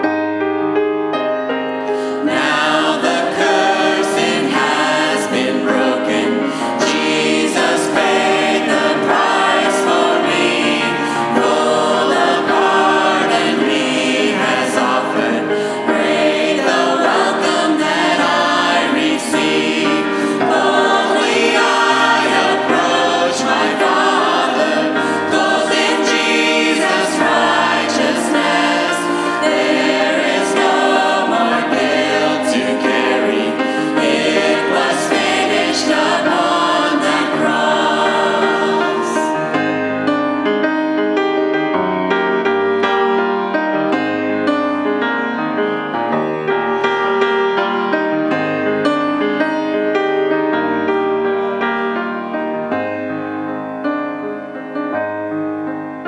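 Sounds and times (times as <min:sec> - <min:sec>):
grand piano accompaniment: 0:00.0 - 0:56.0
vocal group singing in harmony: 0:01.9 - 0:40.5.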